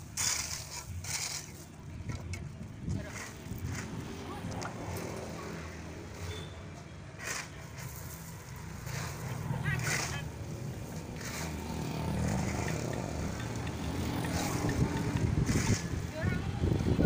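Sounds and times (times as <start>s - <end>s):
shovels scraping into gravel: 0.0s - 4.0s, 7.2s - 13.5s, 15.4s - 16.1s
road traffic rumble: 0.0s - 17.0s.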